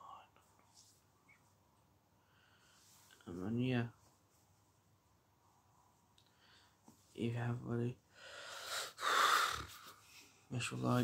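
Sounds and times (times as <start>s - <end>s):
person breathing: 2.2s - 3.2s, 6.2s - 6.8s, 8.1s - 10.5s.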